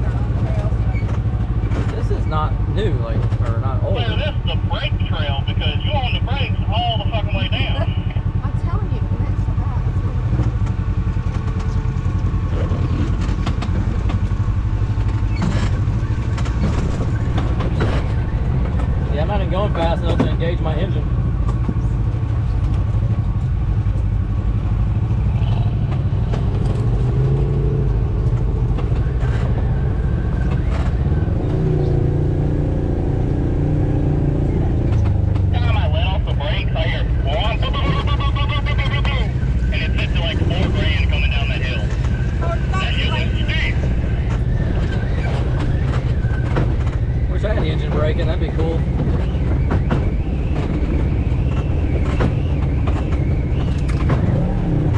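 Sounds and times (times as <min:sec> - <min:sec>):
off-road vehicle engine running: 0:00.0 - 0:54.9.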